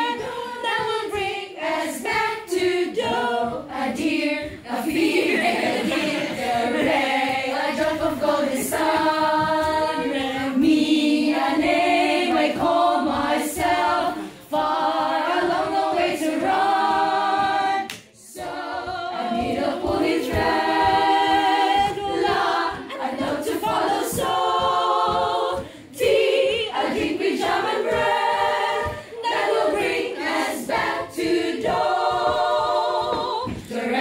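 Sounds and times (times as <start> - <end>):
children's choir singing a cappella: 0.0 - 34.0
singers breathing: 25.6 - 25.9.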